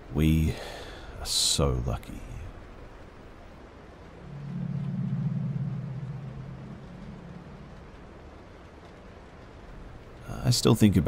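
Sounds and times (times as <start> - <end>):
low droning hum: 2.1 - 10.2.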